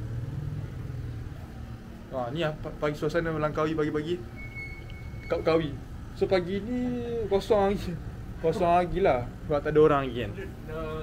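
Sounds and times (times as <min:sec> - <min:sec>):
motorcycle engine low hum: 0:00.0 - 0:08.4.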